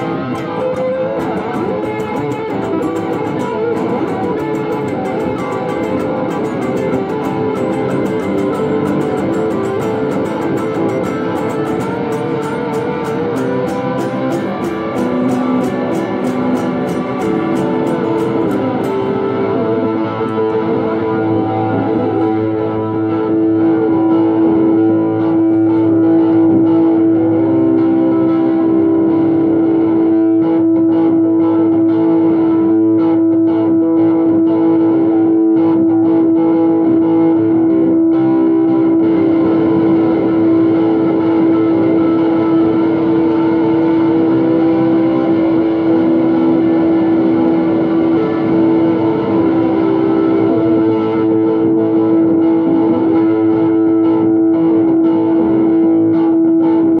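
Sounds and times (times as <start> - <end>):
distorted electric guitar note: 0.0 - 57.0.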